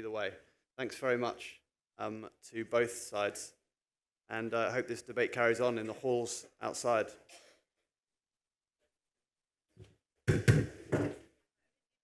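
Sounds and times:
knocks and thumps: 0:10.2 - 0:11.3.

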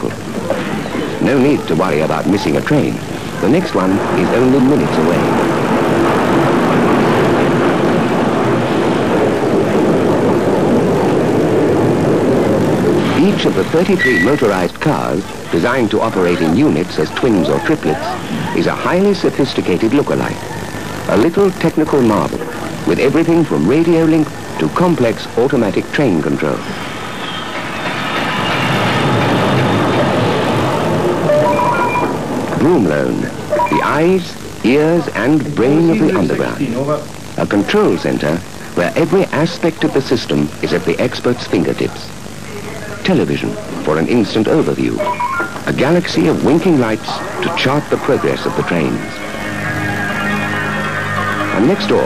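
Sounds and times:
subway train running: 0:00.0 - 0:52.0.

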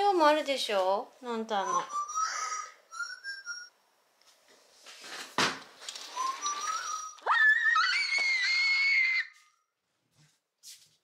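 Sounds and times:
woman screaming: 0:07.2 - 0:09.4.

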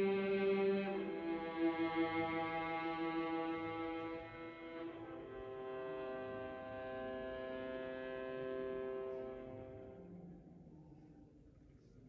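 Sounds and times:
string ensemble sustained chord: 0:00.0 - 0:11.0.

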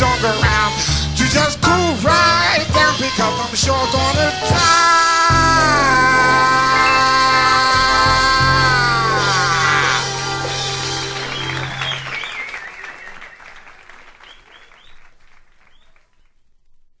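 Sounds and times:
jazz group chord: 0:00.0 - 0:12.1
audience applause: 0:06.0 - 0:16.3.

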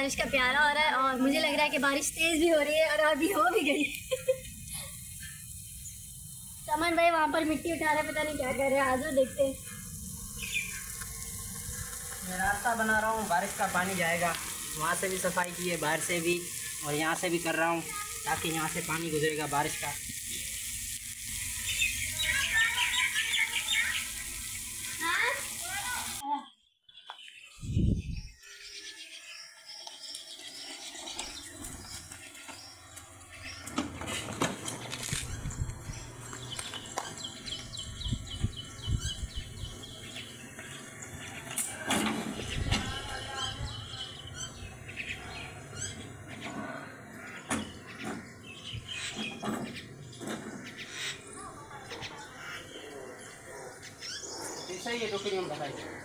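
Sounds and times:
heavy rain hissing: 0:00.0 - 0:26.2, 0:31.2 - 0:53.5
birds chirping: 0:00.0 - 0:56.0
faint voices: 0:51.2 - 0:53.8.

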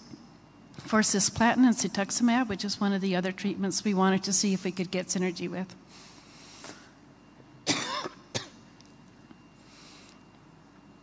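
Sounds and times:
woman coughing: 0:07.6 - 0:08.6.

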